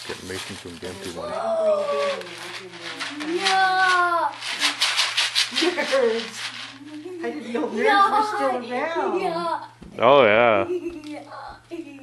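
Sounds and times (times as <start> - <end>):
candy box rattling: 0.1 - 7.0
child's voice: 1.2 - 2.6, 3.2 - 4.5, 7.0 - 9.8, 11.0 - 12.0.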